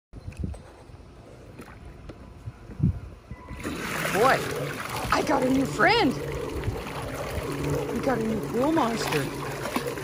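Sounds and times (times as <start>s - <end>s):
water jet splashing: 3.6s - 10.0s.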